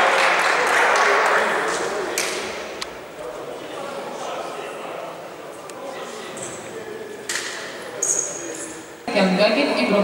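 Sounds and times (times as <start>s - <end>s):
voices echoing in sports hall: 0.0s - 10.0s.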